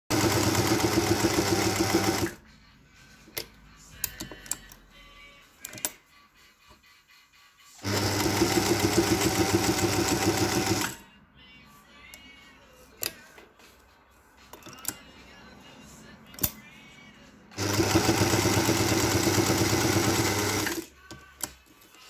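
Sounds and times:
sewing machine stitching: 0:00.1 - 0:02.4, 0:07.8 - 0:11.0, 0:17.5 - 0:20.9.

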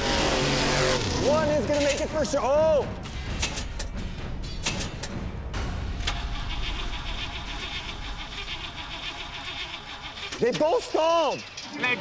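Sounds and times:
background music: 0:00.0 - 0:08.8.

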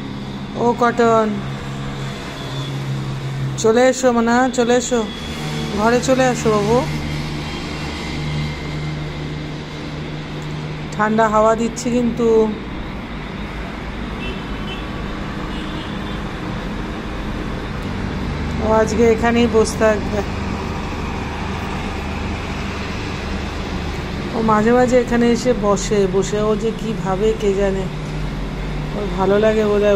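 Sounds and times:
constant low hum: 0:00.0 - 0:29.9
road traffic: 0:00.0 - 0:29.9.

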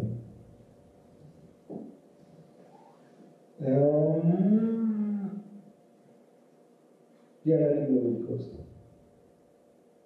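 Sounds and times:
man's drawn-out hesitation vowel: 0:03.6 - 0:05.6.

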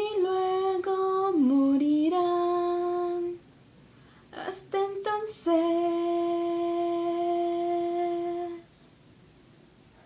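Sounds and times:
brief breath: 0:03.9 - 0:04.3
woman singing a long note: 0:04.4 - 0:08.9.

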